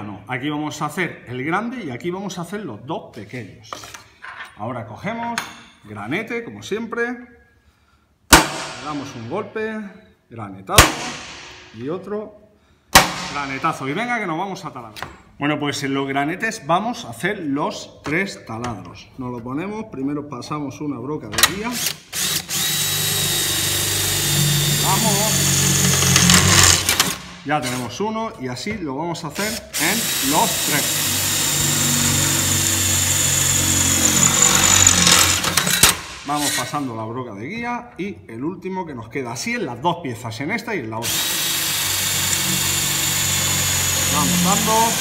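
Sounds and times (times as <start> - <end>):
cordless drill whining: 21.8 - 27.2, 29.5 - 35.9, 41.0 - 45.0.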